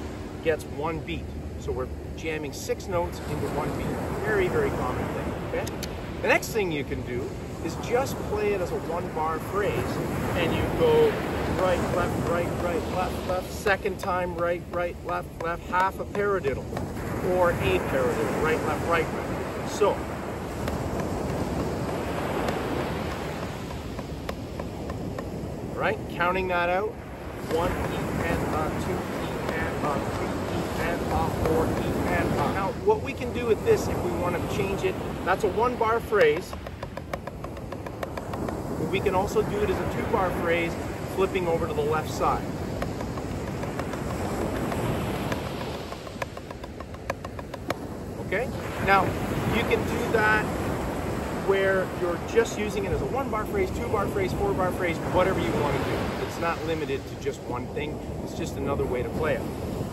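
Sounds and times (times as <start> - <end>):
ocean surf: 0.0 - 59.9
wind on microphone: 0.0 - 59.9
drumsticks tapping practice pad: 13.3 - 16.9, 35.3 - 39.2, 41.9 - 47.8.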